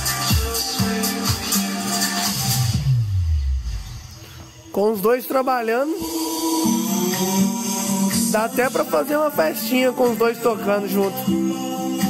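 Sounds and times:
loud electronic music: 0:00.0 - 0:12.0.

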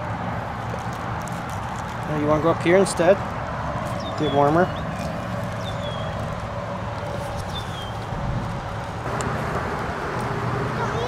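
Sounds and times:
outdoor background noise: 0:00.0 - 0:11.0
bird chirping: 0:04.0 - 0:06.3, 0:07.4 - 0:08.1.

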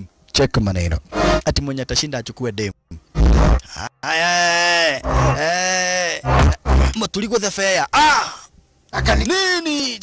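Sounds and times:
men grunting with strain: 0:03.4 - 0:07.0, 0:08.0 - 0:08.5.

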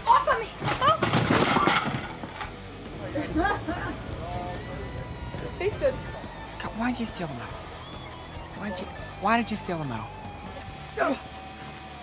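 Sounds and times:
woman laughing: 0:03.0 - 0:04.0.

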